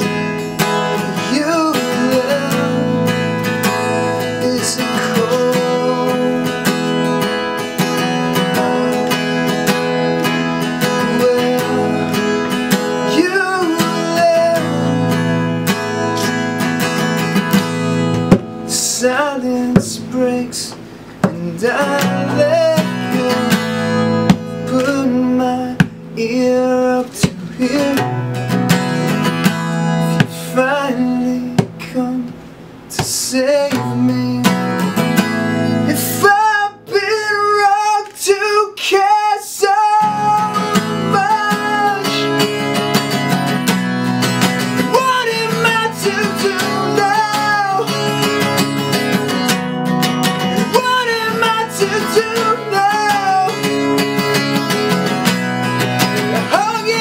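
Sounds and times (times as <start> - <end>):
acoustic guitar strumming: 0.0 - 57.0
man singing: 0.0 - 57.0.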